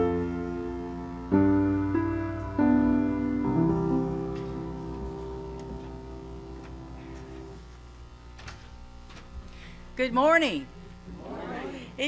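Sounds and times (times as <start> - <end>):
piano chord ringing: 0.0 - 7.6.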